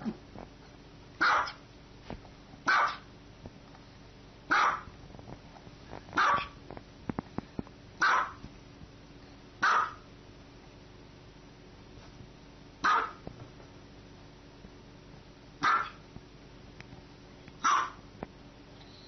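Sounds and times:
small dog barking: 0:01.2 - 0:01.6, 0:02.7 - 0:03.1, 0:04.5 - 0:04.9, 0:06.2 - 0:06.6, 0:08.0 - 0:08.4, 0:09.6 - 0:10.1, 0:12.8 - 0:13.2, 0:15.6 - 0:16.0, 0:17.6 - 0:18.0.

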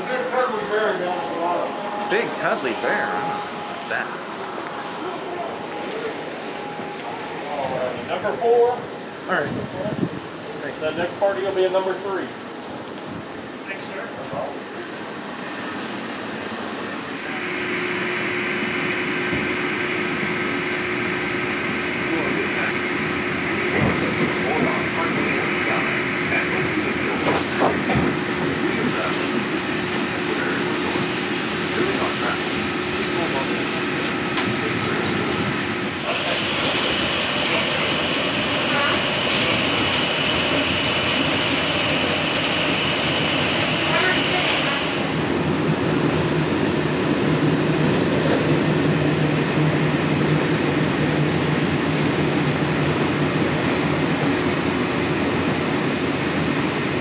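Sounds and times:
train motor whine: 0:00.0 - 0:57.0
train rolling noise: 0:00.0 - 0:57.0.

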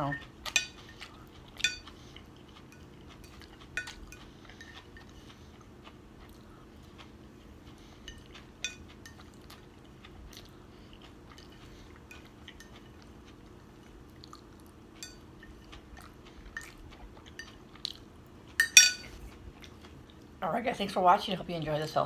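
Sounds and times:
low room hum: 0:00.0 - 0:22.0
chewing: 0:00.1 - 0:20.3.

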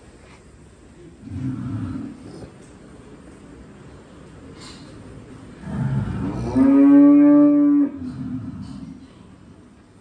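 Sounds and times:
cow mooing: 0:05.8 - 0:08.9.

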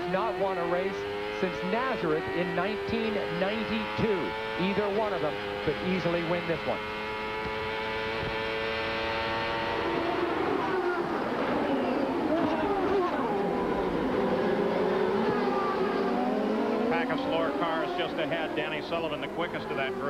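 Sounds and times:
race car engine at high revs: 0:00.0 - 0:20.0
race cars passing trackside: 0:00.0 - 0:20.0.

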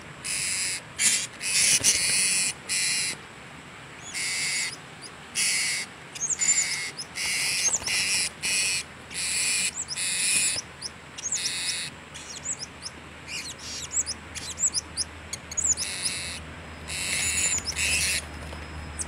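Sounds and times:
parrots calling harshly: 0:00.2 - 0:03.2, 0:04.0 - 0:04.8, 0:05.4 - 0:12.7, 0:13.3 - 0:18.3
thin chirps: 0:09.7 - 0:19.0.

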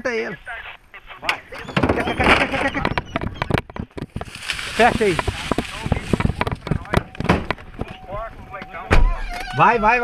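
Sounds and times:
loud thump: 0:05.1 - 0:07.9, 0:08.9 - 0:09.2.

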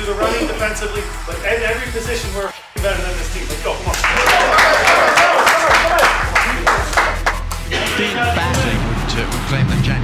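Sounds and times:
background music with low bass: 0:00.0 - 0:10.0
hand slaps and claps: 0:03.9 - 0:07.7.

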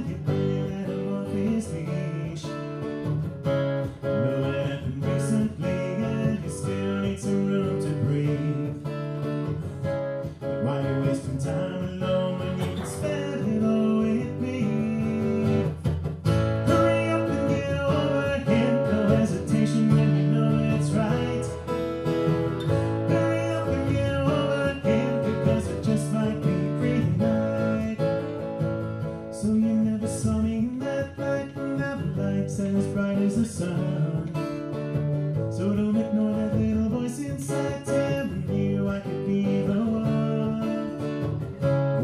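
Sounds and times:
acoustic guitar strumming chords: 0:00.0 - 0:42.0.

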